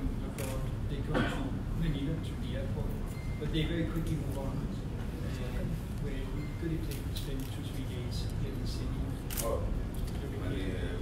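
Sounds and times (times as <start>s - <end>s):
camera shutter clicks: 9.3s - 9.6s.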